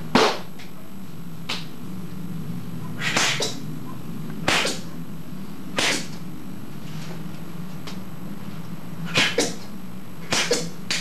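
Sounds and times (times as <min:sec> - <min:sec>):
steady low hum: 0:00.0 - 0:11.0
hand slapping bare skin: 0:10.3 - 0:11.0.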